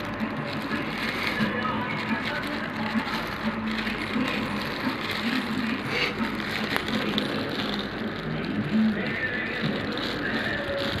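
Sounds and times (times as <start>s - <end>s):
plastic bag crinkling: 0.0s - 11.0s
steady background hum: 0.0s - 11.0s.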